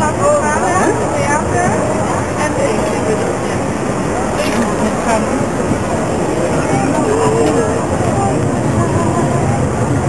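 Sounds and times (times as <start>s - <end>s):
people talking quietly: 0.0s - 10.0s
steady low rumble: 0.0s - 10.0s.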